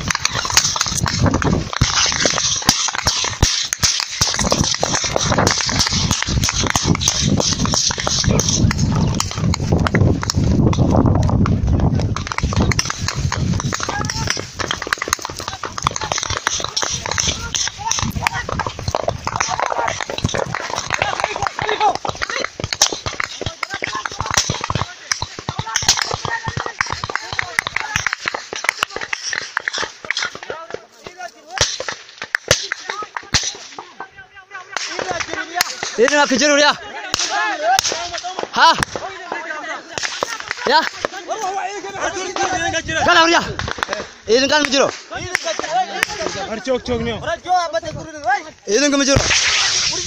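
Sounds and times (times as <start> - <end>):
microphone handling rumble: 0.0 - 2.3, 4.3 - 25.7
gunshots: 0.0 - 10.4, 12.0 - 30.8, 31.5 - 33.9, 34.7 - 41.2, 49.0 - 50.0
voices: 11.1 - 50.0.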